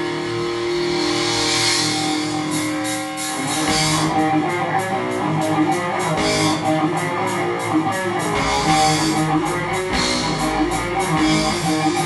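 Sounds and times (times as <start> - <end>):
cymbal wash: 0.0 - 12.0
distorted electric guitar chord: 0.0 - 12.0
drums: 0.0 - 12.0.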